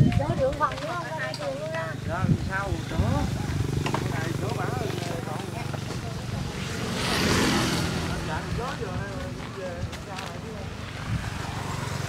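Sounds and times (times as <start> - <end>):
motorbike engine idling: 0.5 - 6.7.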